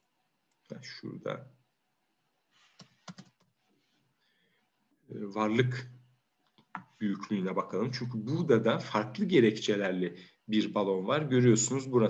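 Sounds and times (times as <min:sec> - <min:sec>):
keyboard keystrokes: 0:03.0 - 0:03.4.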